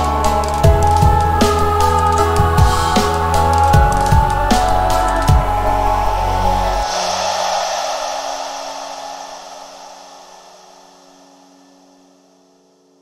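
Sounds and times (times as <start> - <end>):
bass-heavy music: 0.0 - 7.4
held low notes: 0.0 - 11.3
hissing synth wash: 0.0 - 12.0.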